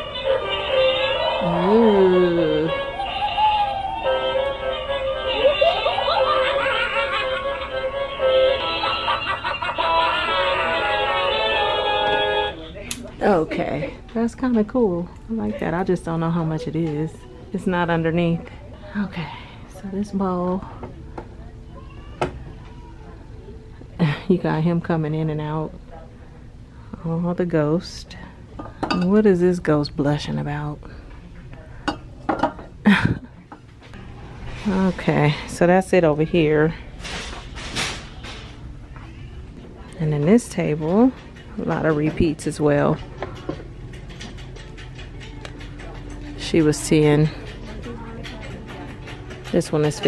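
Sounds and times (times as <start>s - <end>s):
music with singing from small speaker: 0.0s - 12.8s
woman laughing: 5.0s - 11.5s, 32.8s - 33.4s
ceramic clink: 28.6s - 29.2s, 31.9s - 32.7s.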